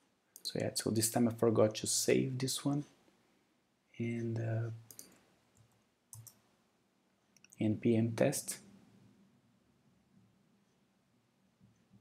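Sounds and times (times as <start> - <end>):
computer keyboard key clicks: 6.1 - 6.4.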